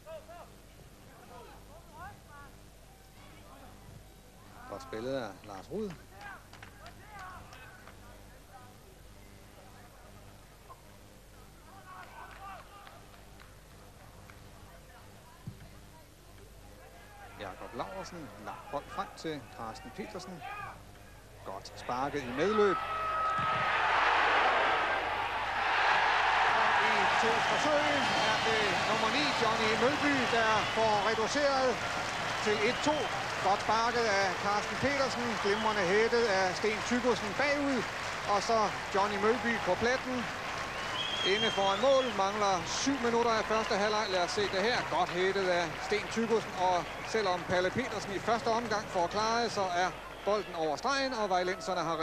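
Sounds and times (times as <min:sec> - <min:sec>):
low steady recording hum: 0:00.0 - 0:52.0
stadium crowd cheering: 0:22.2 - 0:51.9.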